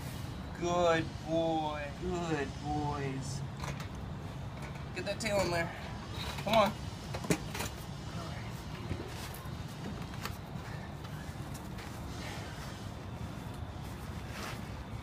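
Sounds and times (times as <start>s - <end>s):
steady low background noise: 0.0s - 15.0s.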